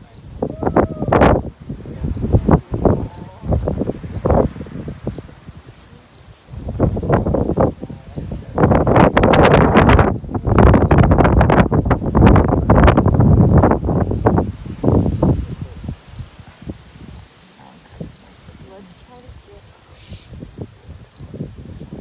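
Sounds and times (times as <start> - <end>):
strong wind buffeting microphone: 0.0 - 22.0.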